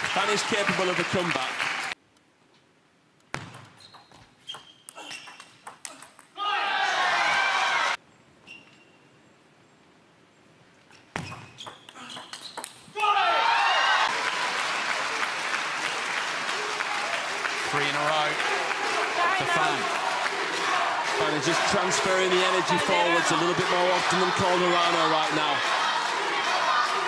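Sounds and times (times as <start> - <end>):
crowd cheering and clapping: 0.0 - 2.0, 6.4 - 8.0, 13.0 - 27.0.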